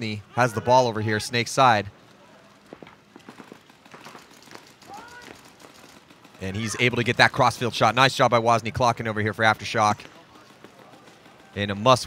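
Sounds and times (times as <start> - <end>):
distant voice calling out: 4.8 - 5.4.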